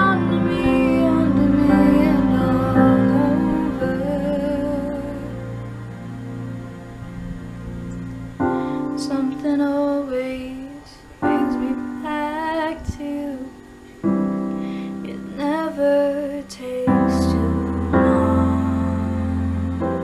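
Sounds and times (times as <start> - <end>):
woman singing a ballad: 0.0 - 5.6, 8.5 - 20.0
piano chords: 0.0 - 20.0.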